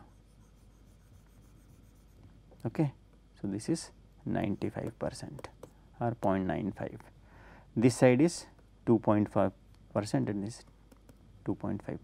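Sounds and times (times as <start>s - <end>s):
stylus scratching on tablet: 0.0s - 2.2s
man speaking: 2.6s - 7.0s.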